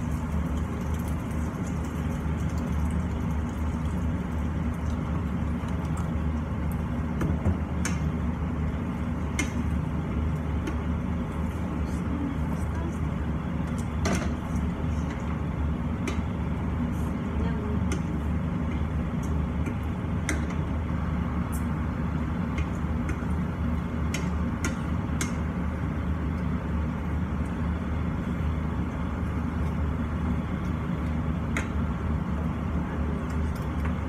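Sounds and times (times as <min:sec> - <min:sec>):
extractor fan humming: 0:00.0 - 0:34.0.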